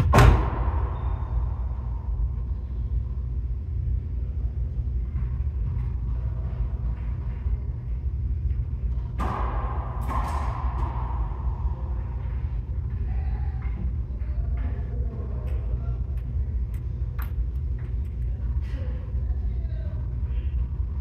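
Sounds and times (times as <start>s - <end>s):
steady low rumble: 0.0s - 21.0s
racquetball smacks echoing: 9.1s - 12.4s.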